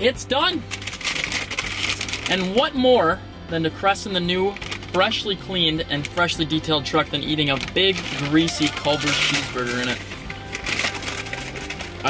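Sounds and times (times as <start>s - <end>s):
soft background music: 0.0s - 12.0s
paper bag crinkling: 0.7s - 2.6s, 4.5s - 5.2s, 7.3s - 12.0s.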